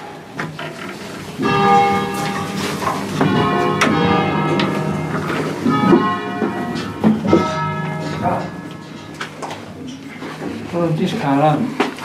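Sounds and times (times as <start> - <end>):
church bells ringing: 0.0 - 11.5.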